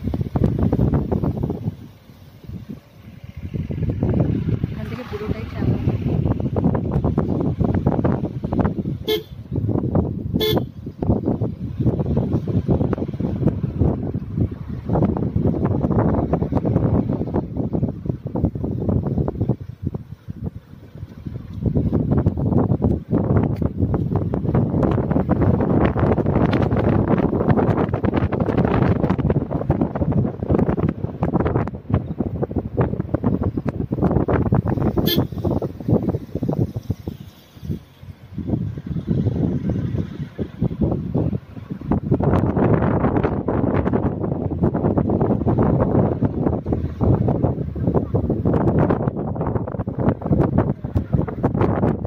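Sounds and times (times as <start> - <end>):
vehicle engine and road noise: 0.0 - 52.0
car horn toots: 9.0 - 9.4, 10.4 - 10.8, 35.0 - 35.6.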